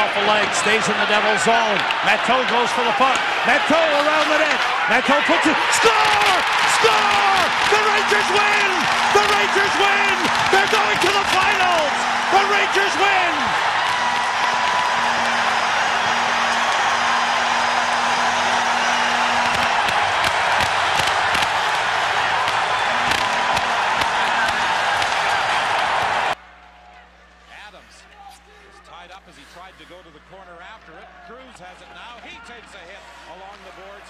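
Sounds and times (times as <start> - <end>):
arena crowd cheering: 0.0 - 34.0.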